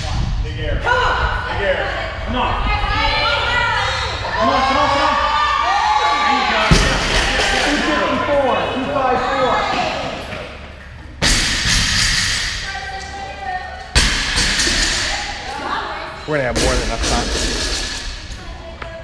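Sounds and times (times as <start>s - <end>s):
voices: 0.0s - 10.8s, 12.5s - 14.0s.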